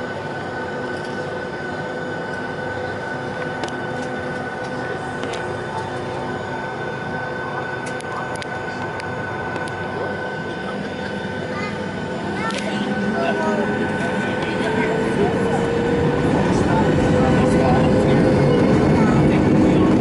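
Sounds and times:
aircraft engine drone: 0.0 - 20.0
high whine: 0.0 - 20.0.

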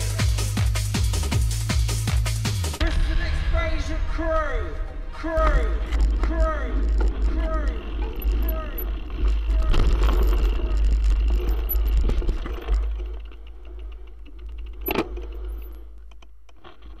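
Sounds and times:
bike rattling: 4.8 - 17.0
bike rolling over dirt trail: 5.7 - 17.0.

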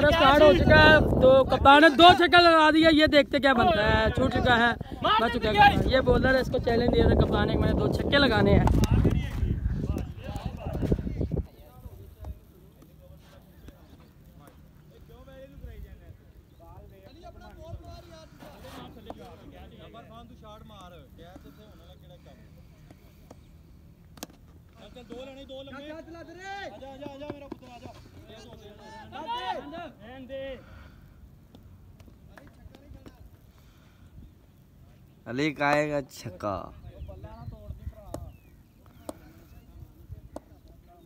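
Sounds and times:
wind rumble on microphone: 0.0 - 2.2, 3.0 - 12.4
faint outdoor background noise: 0.0 - 41.0
distant voices talking and calling: 8.8 - 41.0.

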